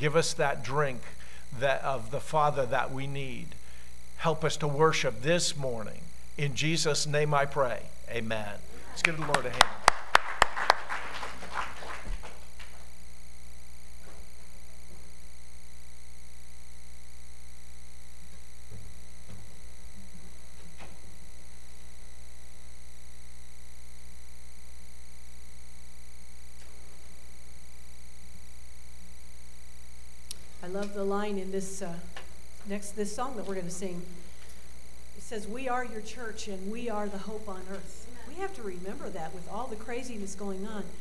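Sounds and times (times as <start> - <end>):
electrical mains hum: 0.0 - 41.0
hand claps: 9.0 - 12.8.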